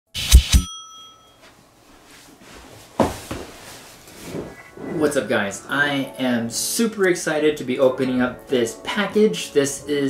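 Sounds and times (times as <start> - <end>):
small bell ringing: 0.6 - 1.5.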